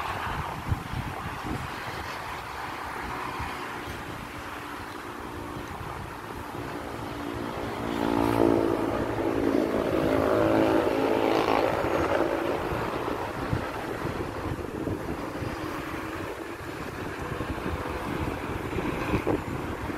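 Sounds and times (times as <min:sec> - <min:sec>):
vehicle engine humming: 0:00.0 - 0:19.9
wind buffeting microphone: 0:00.0 - 0:19.9.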